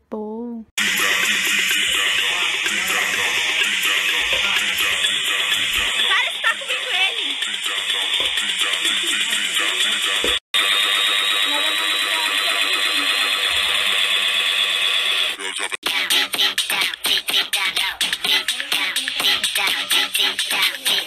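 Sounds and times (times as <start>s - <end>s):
indistinct voices: 0.0s - 10.4s, 11.1s - 14.2s, 15.2s - 21.0s
background music: 0.8s - 10.4s.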